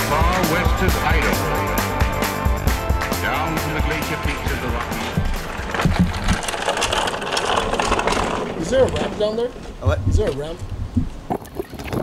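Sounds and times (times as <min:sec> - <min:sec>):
wheeled crate rolling on concrete: 0:03.0 - 0:10.9.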